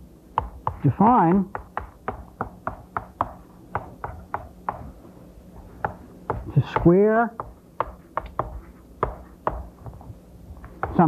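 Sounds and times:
chalk tapping on chalkboard: 0.3s - 5.0s, 5.6s - 11.0s.

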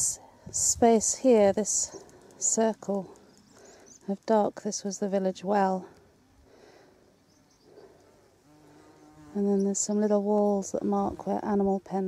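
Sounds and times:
faint insect buzz: 1.2s - 5.2s, 5.8s - 11.9s.

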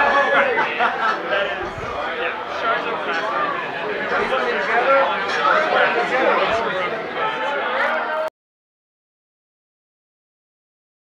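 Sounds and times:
crowd talking: 0.0s - 8.3s.

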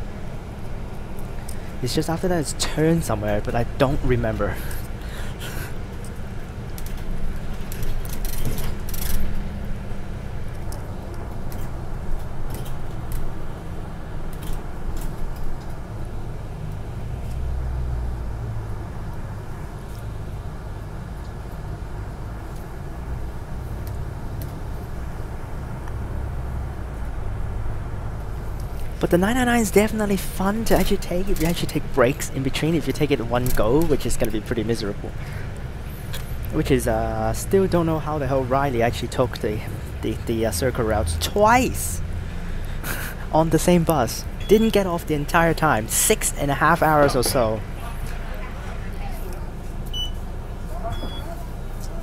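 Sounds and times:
bus engine and road rumble: 0.0s - 52.0s.

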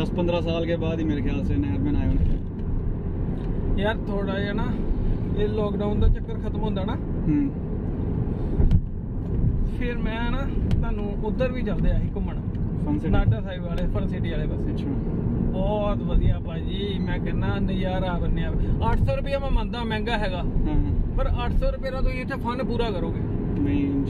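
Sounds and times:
men talking: 0.0s - 2.3s, 3.8s - 7.6s, 9.7s - 24.0s
car road and engine rumble: 0.0s - 24.0s.

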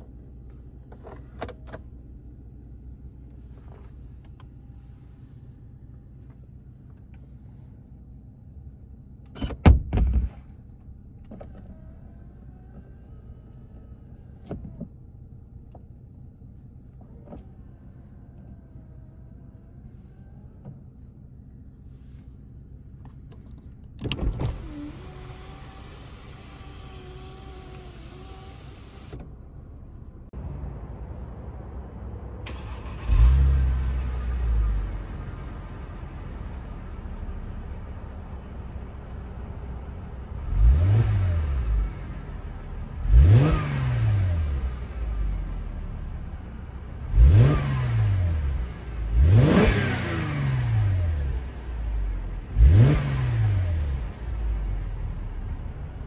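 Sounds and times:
car engine idling: 0.0s - 9.4s, 10.3s - 43.5s
car exhaust revving: 40.4s - 42.1s, 42.9s - 45.8s, 47.0s - 55.0s.

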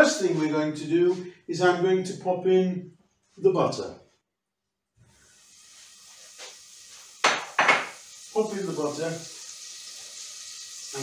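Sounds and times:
butter sizzling in a pot: 5.0s - 11.0s.

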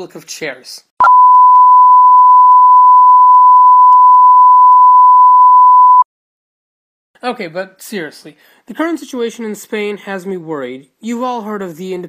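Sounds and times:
steady test tone beep: 1.0s - 6.1s.

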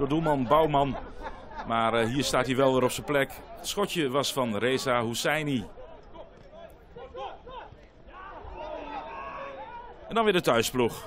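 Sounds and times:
players calling out: 2.0s - 11.0s.

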